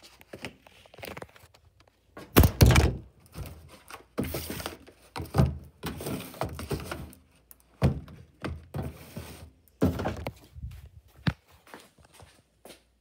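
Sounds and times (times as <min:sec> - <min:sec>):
dull thunks of objects: 0:02.2 - 0:03.1
rustling and scraping: 0:03.2 - 0:12.5.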